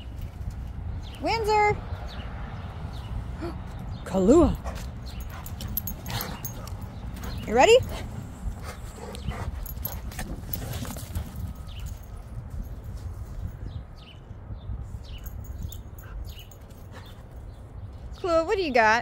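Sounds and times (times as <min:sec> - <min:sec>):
wind rumbling on microphone: 0:00.0 - 0:18.2
dogs whining: 0:05.1 - 0:08.0.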